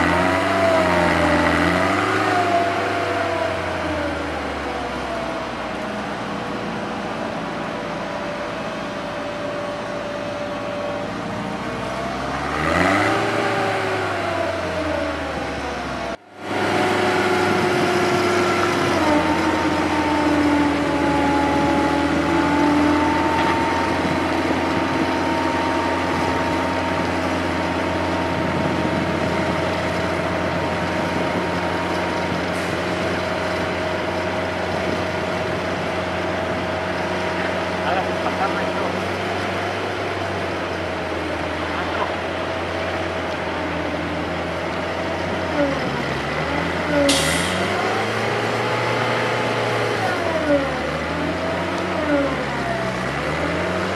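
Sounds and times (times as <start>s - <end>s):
engine whine: 0.0s - 53.9s.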